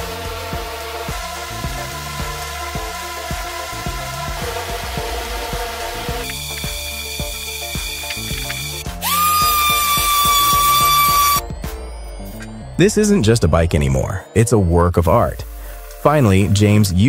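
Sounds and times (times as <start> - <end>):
electric sander whining: 0.0 - 11.4
background music with steady beat: 0.0 - 17.0.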